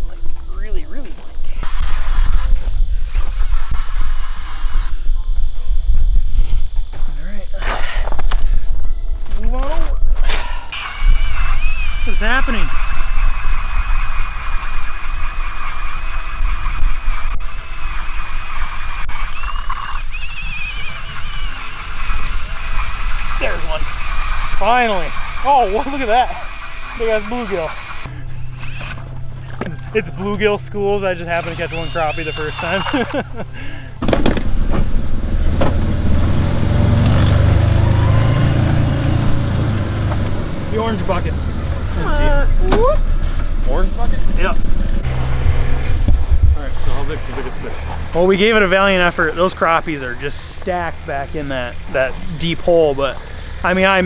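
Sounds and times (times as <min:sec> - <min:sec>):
thin wavering high whine: 0:00.0 - 0:07.6, 0:10.8 - 0:33.5
vehicle engine rumbling: 0:00.0 - 0:54.0
sharp knocks: 0:34.0 - 0:34.9
wind buffeting microphone: 0:44.2 - 0:47.6.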